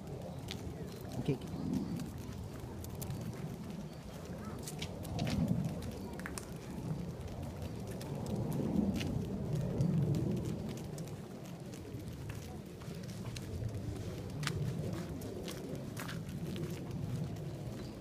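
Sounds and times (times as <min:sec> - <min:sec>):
footsteps on paved path: 0:00.0 - 0:18.0
low rumbling noise: 0:00.0 - 0:18.0.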